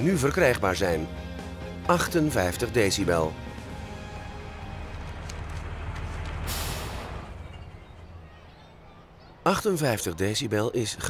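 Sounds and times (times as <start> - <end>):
diesel truck engine idling: 3.3 - 9.4
air brake hiss: 6.5 - 7.2.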